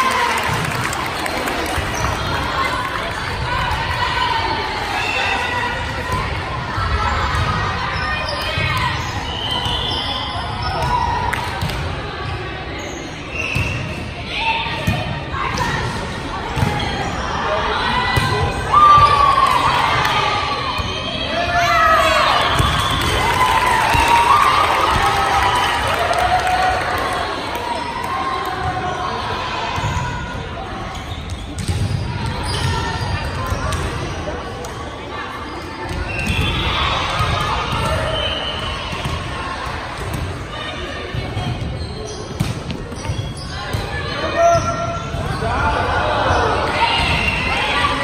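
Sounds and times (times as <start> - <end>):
echoing indistinct chatter: 0.0 - 48.0.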